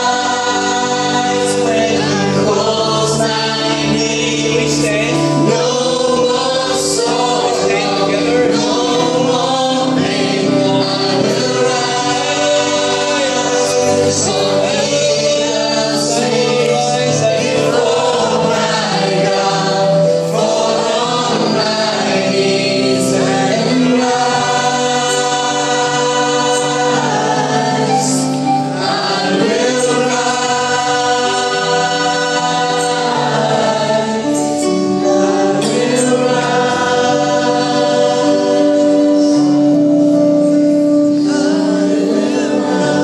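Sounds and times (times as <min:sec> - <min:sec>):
man and woman singing: 0:00.0 - 0:39.8, 0:41.2 - 0:43.0
keyboard: 0:00.0 - 0:43.0.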